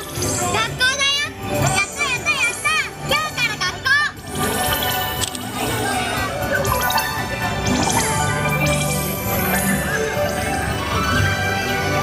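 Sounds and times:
parade music: 0:00.0 - 0:12.0
high-pitched child-like voice: 0:00.4 - 0:04.2.

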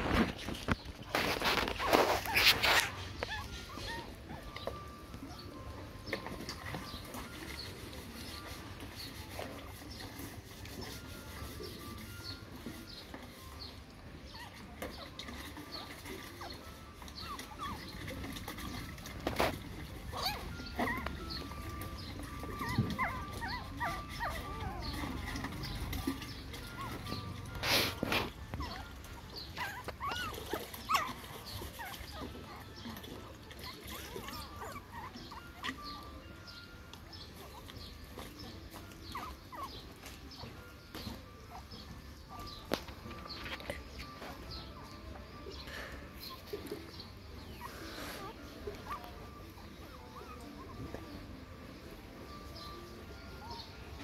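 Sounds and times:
water sloshing in a bucket: 0:00.0 - 0:52.8
puppy whimpers: 0:00.0 - 0:54.0.

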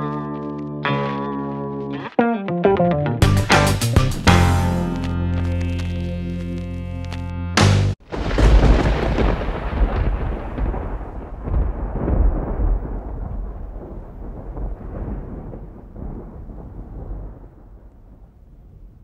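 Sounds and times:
rolling thunder: 0:08.0 - 0:19.0.

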